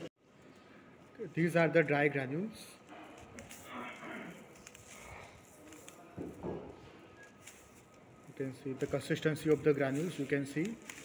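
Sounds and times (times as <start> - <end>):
granules trickling onto paper: 2.8 - 6.4, 7.2 - 11.0.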